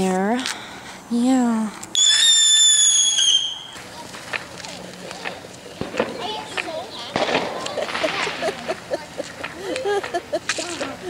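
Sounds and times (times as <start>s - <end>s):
whistling firework: 2.0s - 3.9s, 5.8s - 8.6s.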